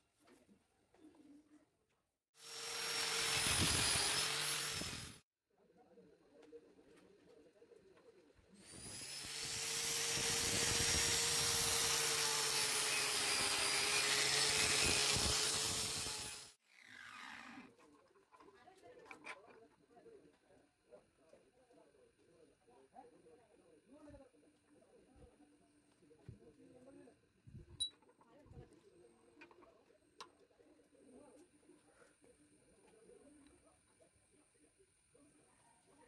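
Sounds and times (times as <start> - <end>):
angle grinder on metal: 2.4 - 5.2, 8.7 - 17.5.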